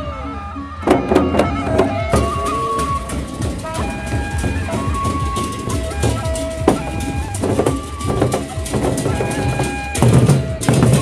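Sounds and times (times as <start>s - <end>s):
large barrel drums: 0.0s - 11.0s
melody of long held notes: 0.0s - 11.0s.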